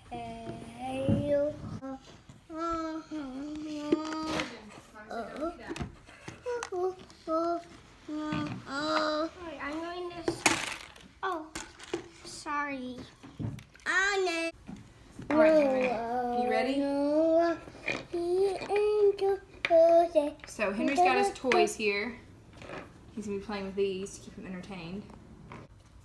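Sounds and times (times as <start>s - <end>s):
child babbling: 0.1s - 4.4s, 15.4s - 20.4s
knocks and rustles of handling: 0.4s - 13.9s.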